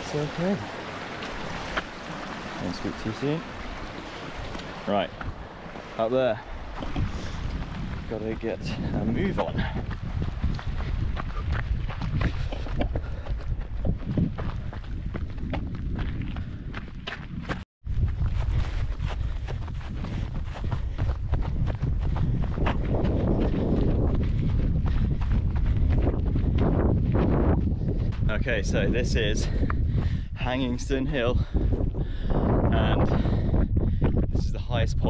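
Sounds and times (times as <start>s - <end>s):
wind rumbling on microphone: 0.0s - 35.0s
footsteps on grass: 0.5s - 17.4s, 18.0s - 28.2s.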